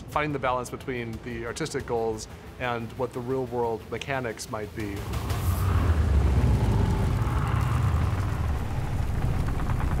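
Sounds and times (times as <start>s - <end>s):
deep steady rumble: 5.0s - 10.0s.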